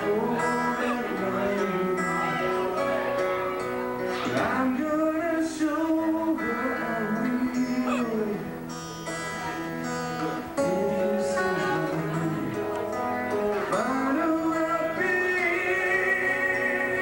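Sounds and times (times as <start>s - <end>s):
man singing into microphone: 0.0s - 3.2s, 4.0s - 8.7s, 10.2s - 17.0s
guitar strumming: 0.0s - 17.0s.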